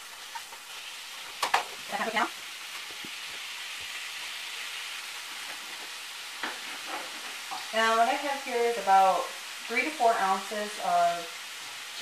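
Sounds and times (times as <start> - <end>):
greens sizzling in a skillet: 0.0 - 12.0.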